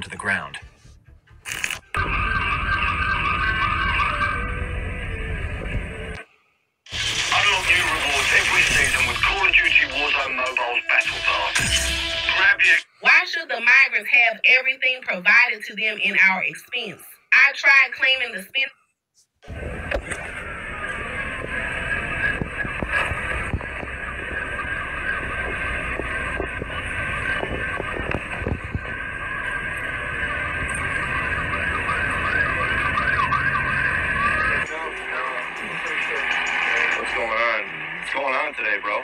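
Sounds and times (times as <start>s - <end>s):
steady rumble: 0.0s - 6.2s, 19.4s - 39.0s
muffled voices: 7.0s - 14.1s, 19.4s - 39.0s.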